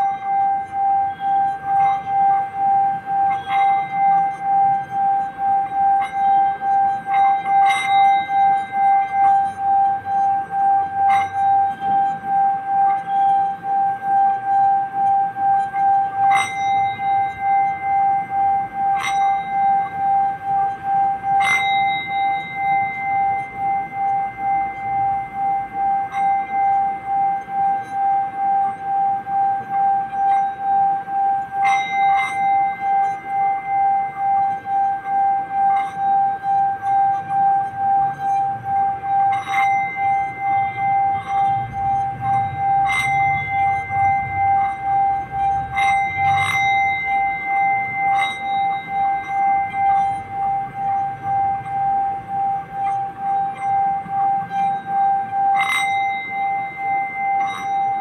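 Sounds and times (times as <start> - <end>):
singing bowl ringing: 0.0 - 58.0
singing bowl strike: 0.0 - 58.0.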